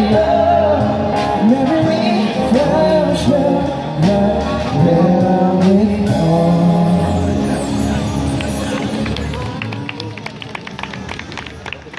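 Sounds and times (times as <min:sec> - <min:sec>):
crowd voices: 0:00.0 - 0:11.9
hand claps: 0:08.3 - 0:11.9.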